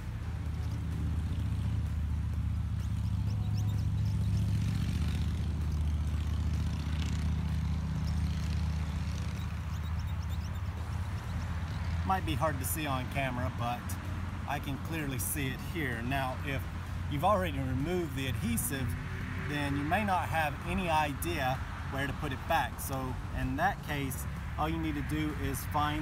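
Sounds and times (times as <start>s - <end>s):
low engine drone: 0.0s - 26.0s.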